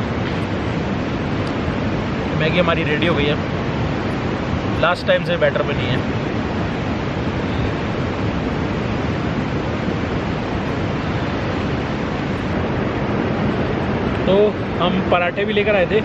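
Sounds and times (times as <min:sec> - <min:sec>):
steady rushing noise: 0:00.0 - 0:16.0.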